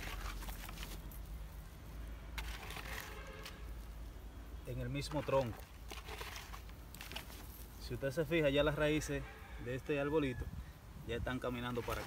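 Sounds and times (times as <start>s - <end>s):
dry manure pouring onto soil: 2.4s - 3.9s, 4.8s - 7.8s.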